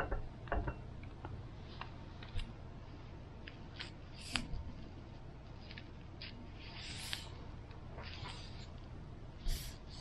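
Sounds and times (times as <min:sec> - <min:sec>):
brush scratching on paper: 0:05.4 - 0:10.0.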